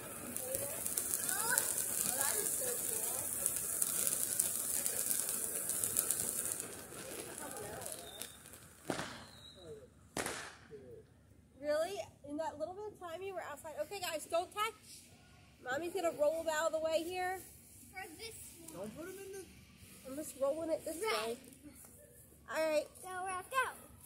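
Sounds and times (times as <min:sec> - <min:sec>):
firework fountain hissing and crackling: 0:00.0 - 0:10.7, 0:11.8 - 0:14.9, 0:15.6 - 0:24.0.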